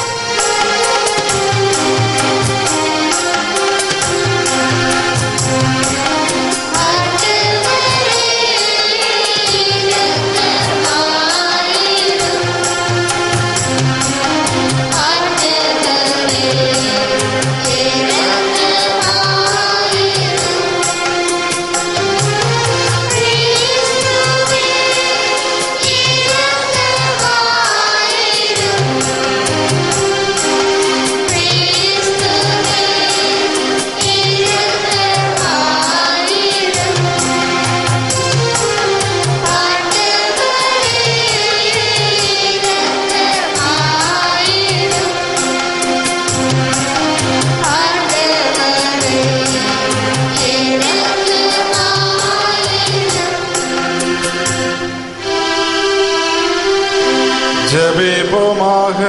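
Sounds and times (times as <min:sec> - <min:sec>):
steady percussion beat: 0:00.0 - 0:55.0
choir singing a hymn: 0:00.0 - 0:59.0
instrumental accompaniment: 0:00.0 - 0:59.0.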